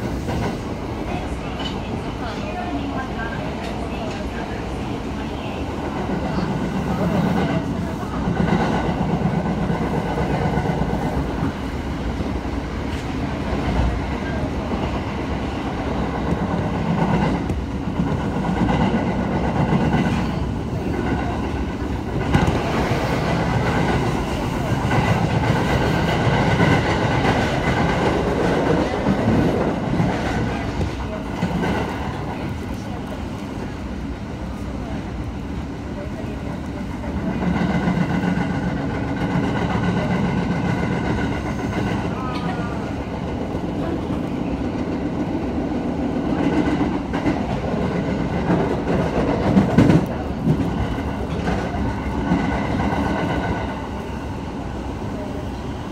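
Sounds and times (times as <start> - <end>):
train wheels rumbling on rails: 0.0 - 55.9.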